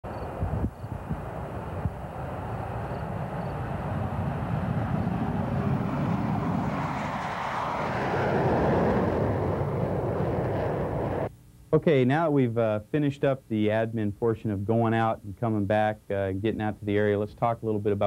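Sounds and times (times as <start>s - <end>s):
jet engines roaring on takeoff: 0.1s - 11.3s.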